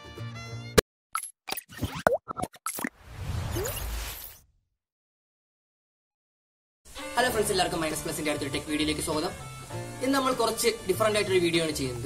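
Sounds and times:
background music: 0:00.0 - 0:00.8, 0:06.9 - 0:12.0.

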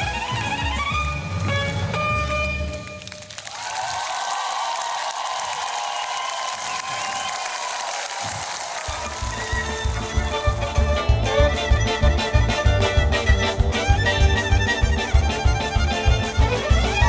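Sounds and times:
violin with orchestra: 0:00.0 - 0:03.2, 0:08.8 - 0:17.0
audience applause: 0:03.0 - 0:11.0
music with strong bass: 0:09.3 - 0:17.0.

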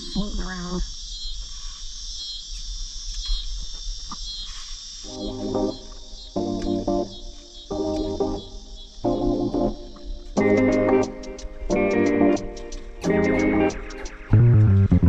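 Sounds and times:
insects chirring: 0:00.0 - 0:14.8
music with repeated chords: 0:05.1 - 0:15.0.

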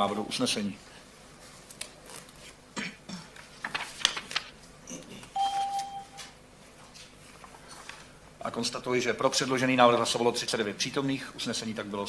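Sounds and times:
electronic beep: 0:05.4 - 0:06.2.

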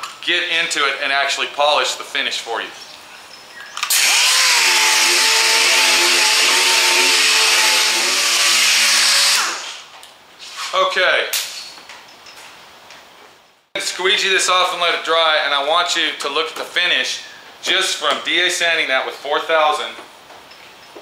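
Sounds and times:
air sander whining: 0:03.9 - 0:09.8.

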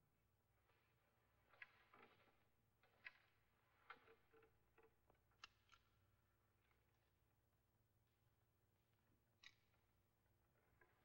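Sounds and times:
faint clicks and knocks: 0:00.6 - 0:07.0, 0:09.2 - 0:11.0.

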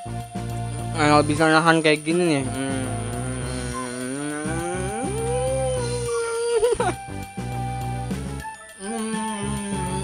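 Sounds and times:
man humming with mouth closed: 0:02.4 - 0:07.2, 0:08.8 - 0:10.0.

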